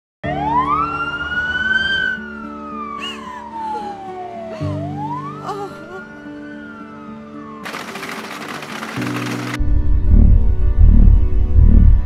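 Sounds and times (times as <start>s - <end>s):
ambulance siren wailing: 0.2s - 7.8s.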